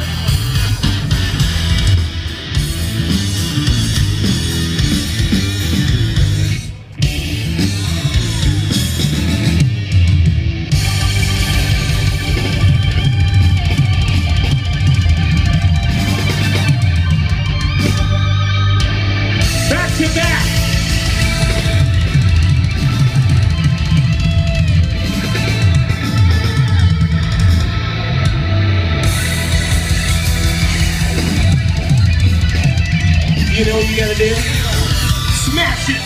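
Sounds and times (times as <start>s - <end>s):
live band playing rock music: 0.0s - 36.0s.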